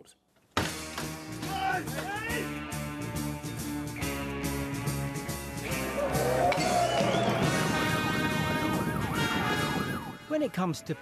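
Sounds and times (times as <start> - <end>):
police siren yelping: 5.8 - 10.3.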